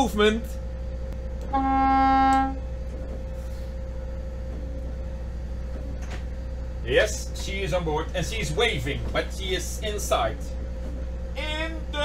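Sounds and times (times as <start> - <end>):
low engine hum: 0.0 - 12.0
boat horn blast: 1.5 - 2.7.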